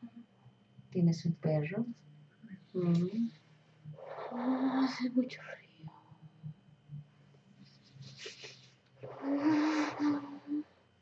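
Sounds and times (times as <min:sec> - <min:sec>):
woman moaning breathily: 0:09.1 - 0:10.7.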